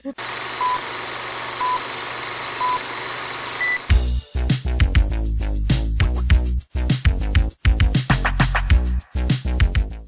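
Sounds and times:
person laughing: 0.0s - 0.2s.

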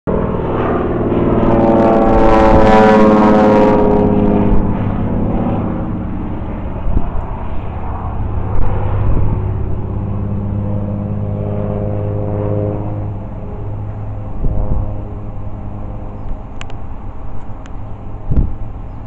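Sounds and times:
propeller airplane passing overhead: 0.0s - 19.0s.

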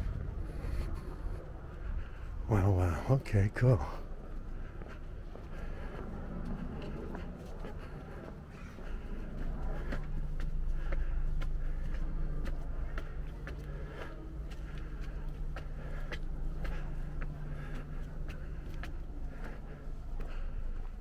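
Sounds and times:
low hum: 0.0s - 21.0s.

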